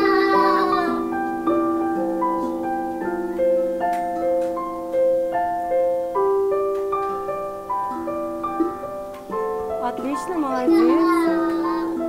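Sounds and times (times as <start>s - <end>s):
digital piano melody: 0.0s - 12.0s.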